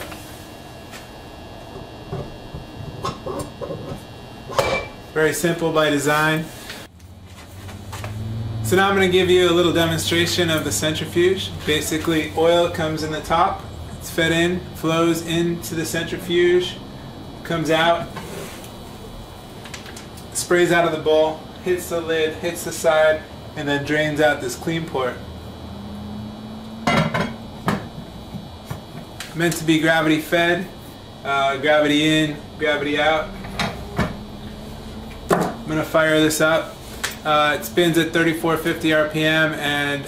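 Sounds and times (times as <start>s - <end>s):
low background hiss and hum: 0.0s - 40.0s.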